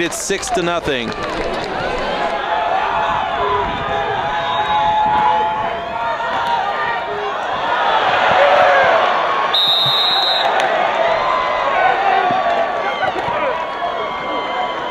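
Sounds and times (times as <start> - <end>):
crowd shouting and cheering: 0.0 - 14.9
whistle blast: 9.5 - 10.6.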